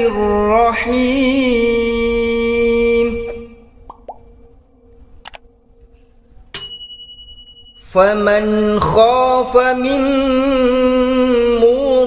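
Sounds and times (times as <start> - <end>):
bell-like notification chime: 6.6 - 8.1.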